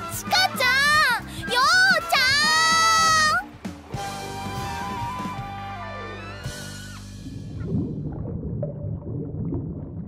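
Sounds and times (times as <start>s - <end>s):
soft background music: 0.0s - 8.3s
person shouting: 0.2s - 3.4s.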